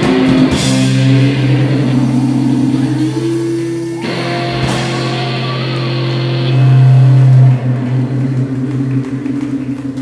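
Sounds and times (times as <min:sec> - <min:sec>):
electric guitars holding a chord: 0:00.0 - 0:10.0.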